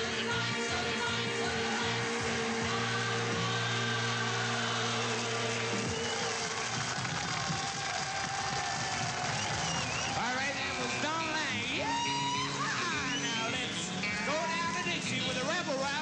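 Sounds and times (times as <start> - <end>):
rock band holding a chord: 0.0 - 7.6.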